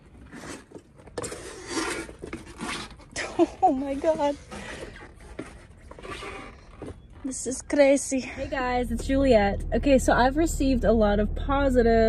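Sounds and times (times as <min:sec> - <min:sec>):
rubber tires shifting underfoot: 0:00.0 - 0:09.5.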